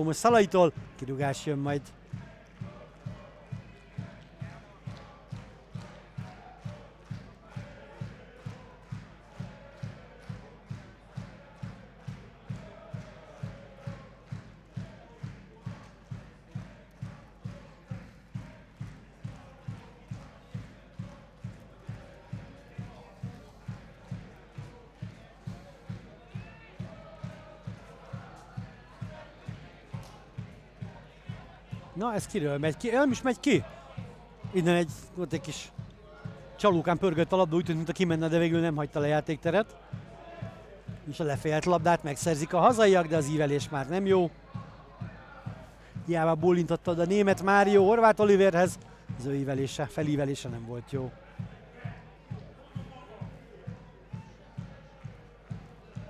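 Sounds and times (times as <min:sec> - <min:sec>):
faint crowd chanting: 0:00.0 - 0:56.0.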